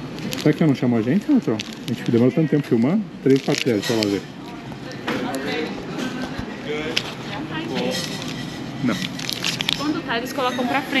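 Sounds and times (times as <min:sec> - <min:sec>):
shop background noise: 0:00.0 - 0:11.0
indistinct voices talking: 0:01.3 - 0:11.0.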